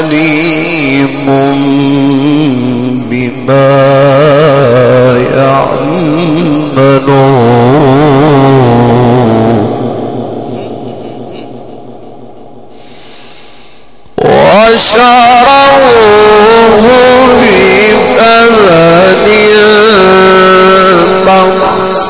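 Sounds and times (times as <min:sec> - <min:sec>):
man chanting recitation: 0:00.0 - 0:11.9, 0:14.2 - 0:22.0.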